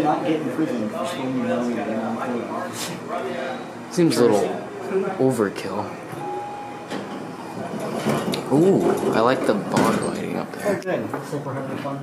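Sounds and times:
elevator chime tone: 6.2 - 6.9.

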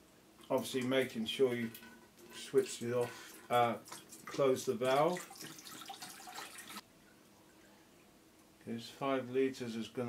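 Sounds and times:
water pouring into metal tank: 0.5 - 6.8.

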